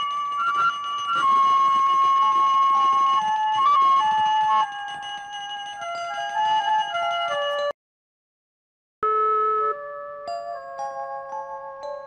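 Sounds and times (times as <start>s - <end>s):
slow woodwind film music: 0.0s - 4.8s.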